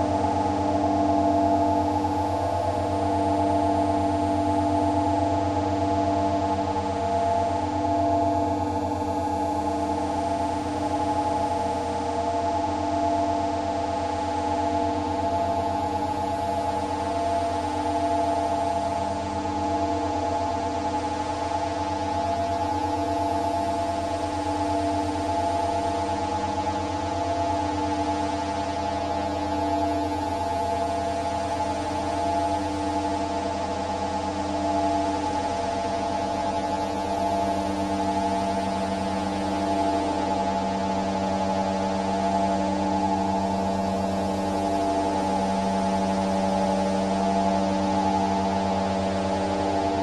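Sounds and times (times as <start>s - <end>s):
sustained drone tones: 0.0s - 27.2s, 28.4s - 50.0s
rapidly pulsing low hum: 0.0s - 50.0s.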